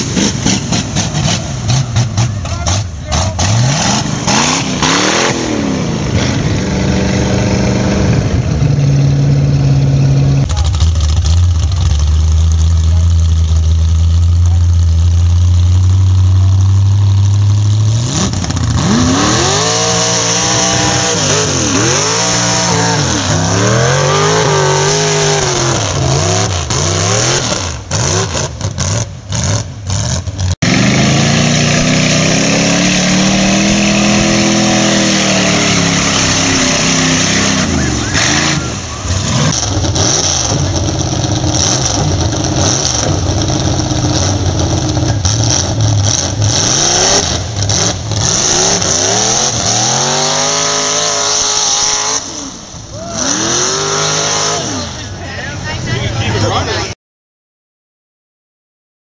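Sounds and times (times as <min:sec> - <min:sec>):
truck engines revving: 0:00.0 - 0:57.0.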